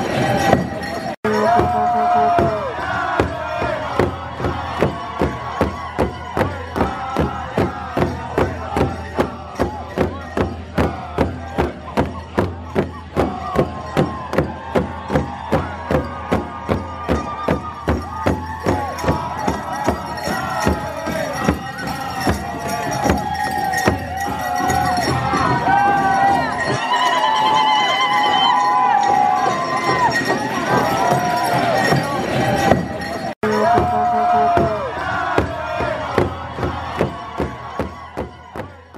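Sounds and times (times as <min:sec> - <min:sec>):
men singing in high wavering voices: 0:00.0 - 0:14.6, 0:16.5 - 0:27.1, 0:27.9 - 0:38.8
large drum beaten in unison: 0:00.0 - 0:26.8, 0:29.0 - 0:38.9.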